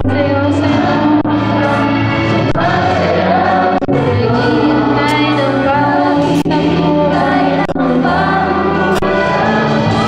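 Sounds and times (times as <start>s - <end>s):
electric guitar accompaniment: 0.0s - 10.0s
group singing worship song: 0.0s - 10.0s.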